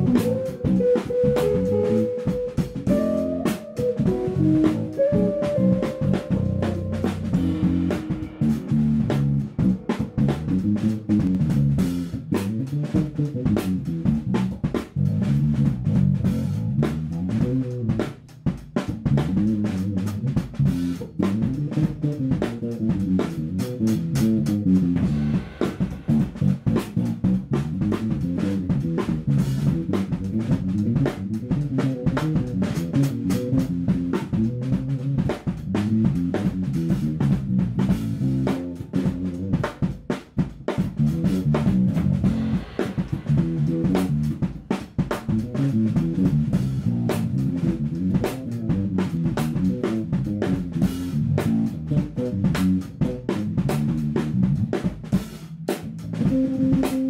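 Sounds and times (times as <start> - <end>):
electric guitars: 0.0 - 12.2
drum kit: 0.0 - 57.0
electric bass: 0.0 - 57.0.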